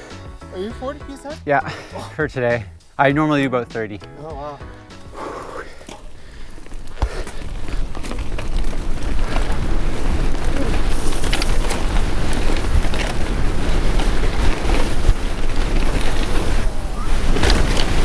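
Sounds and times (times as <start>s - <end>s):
bike tyres rolling over dirt: 0.0s - 18.0s
bike clicks and rattles: 4.5s - 18.0s
wind noise on microphone: 6.8s - 18.0s.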